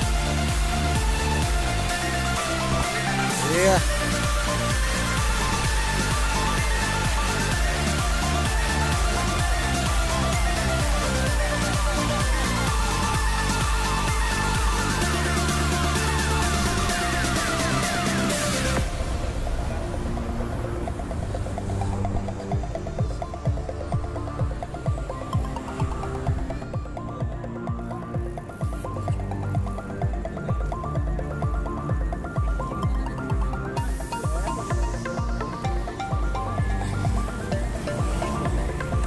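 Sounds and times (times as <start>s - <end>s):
electronic music with steady beat: 0.0s - 39.0s.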